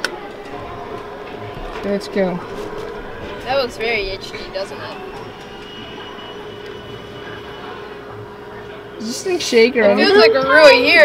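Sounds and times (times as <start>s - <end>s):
boat engine drone: 0.0s - 11.0s.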